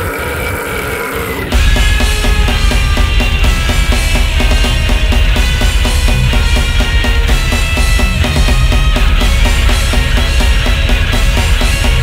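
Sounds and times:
extreme metal music: 0.0s - 12.0s
fast even drumming: 1.5s - 12.0s.

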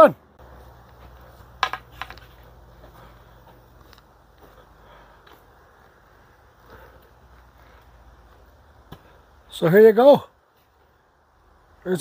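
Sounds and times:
room hum: 0.2s - 9.6s.

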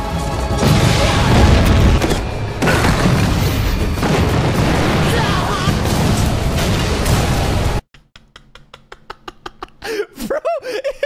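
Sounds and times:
dramatic music: 0.0s - 7.8s
booming magic attack effects: 0.4s - 7.8s.

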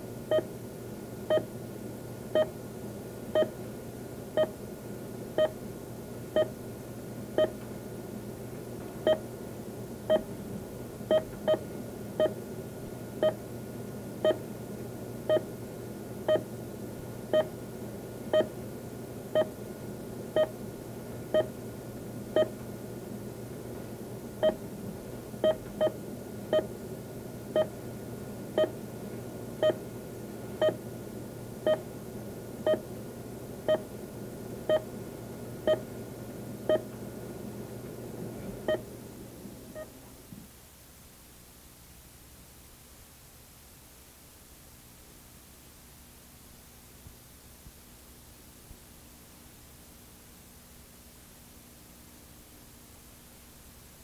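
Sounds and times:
low electrical hum: 0.0s - 54.0s
heart-rate monitor beeping: 0.3s - 0.5s, 1.3s - 1.5s, 2.4s - 2.6s, 3.4s - 3.6s, 4.4s - 4.6s, 5.4s - 5.6s, 6.4s - 6.6s, 7.4s - 7.6s, 9.0s - 9.2s, 10.1s - 10.3s, 11.1s - 12.4s, 13.2s - 13.4s, 14.2s - 14.4s, 15.3s - 15.5s, 16.3s - 16.5s, 17.3s - 17.5s, 18.3s - 18.5s, 20.4s - 20.6s, 22.4s - 22.6s, 24.4s - 24.6s, 25.4s - 26.7s, 27.6s - 27.8s, 28.6s - 28.8s, 29.6s - 29.8s, 30.6s - 30.8s, 31.7s - 31.9s, 32.6s - 32.9s, 33.7s - 33.9s, 34.7s - 34.9s, 35.7s - 35.9s, 36.7s - 36.9s.

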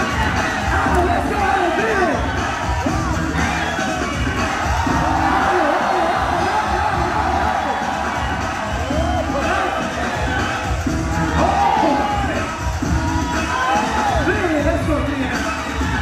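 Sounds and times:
crowd cheering and whooping: 0.0s - 16.0s
dance music with steady beat: 0.0s - 16.0s.

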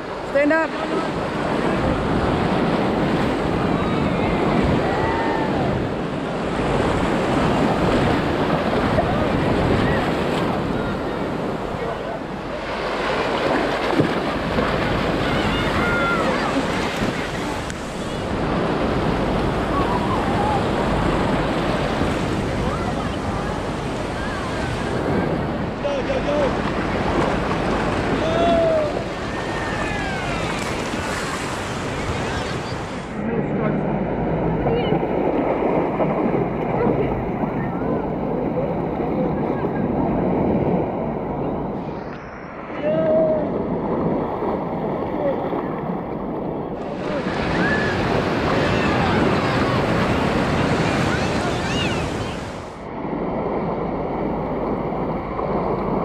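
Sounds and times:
beach surf washing: 0.0s - 56.0s
wind on microphone: 0.0s - 56.0s
distant children shouting: 3.7s - 5.8s, 15.2s - 17.4s, 28.1s - 32.9s, 47.2s - 52.6s.

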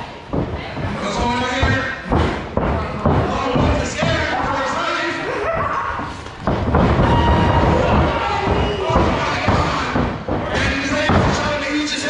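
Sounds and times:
bodies thudding on wrestling ring: 6.3s - 11.6s.

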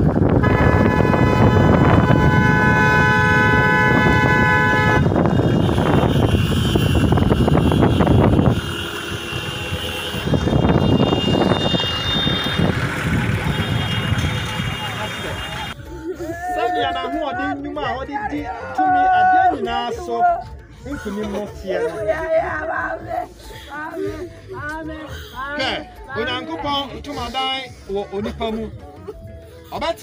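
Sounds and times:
vehicle noise: 0.0s - 19.7s
vehicle horns blasting: 0.3s - 15.9s
voices: 6.2s - 29.2s.

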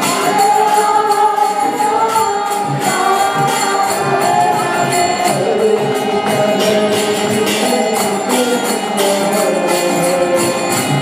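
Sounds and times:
hand cymbals chiming: 0.0s - 11.0s
harmonium chords: 0.0s - 11.0s
voices singing: 0.0s - 11.0s.

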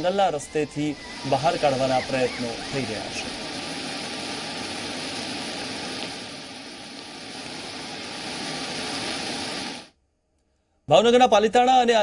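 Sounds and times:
heavy rain: 0.0s - 9.9s
waterfall rushing: 0.0s - 9.9s.

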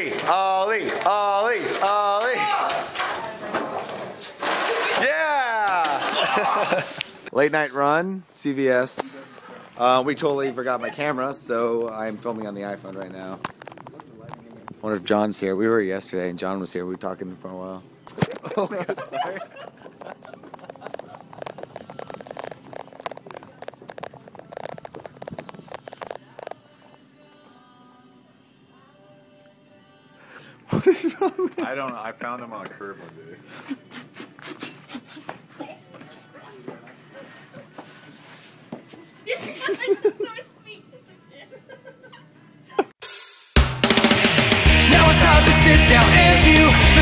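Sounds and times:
person shouting: 0.5s - 2.8s
faint background music: 6.6s - 42.9s
quick footsteps: 19.6s - 26.6s.

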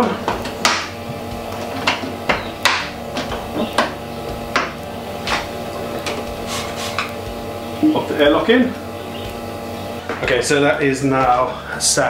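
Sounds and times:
cooling unit humming: 0.0s - 12.0s.

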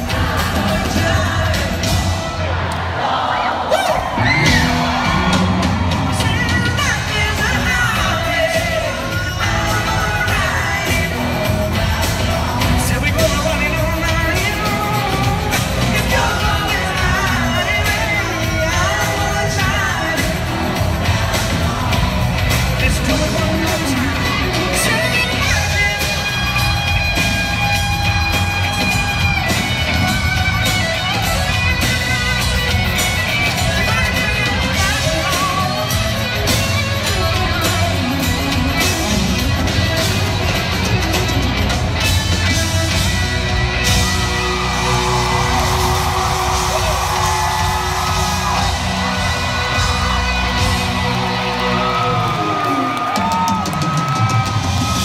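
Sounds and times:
live rock band playing: 0.0s - 2.6s, 4.0s - 55.0s
crowd yelling: 0.0s - 55.0s.

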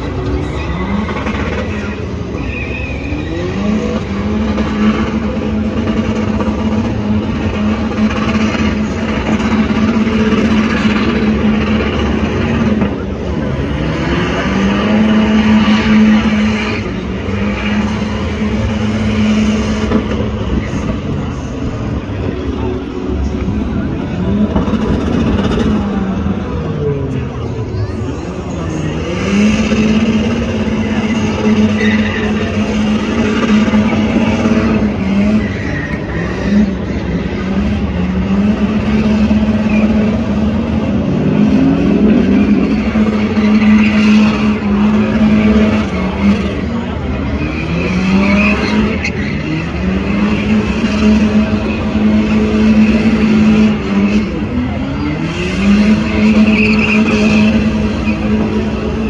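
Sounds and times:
engine revving high: 0.0s - 59.0s
tyres spinning: 0.0s - 59.0s.

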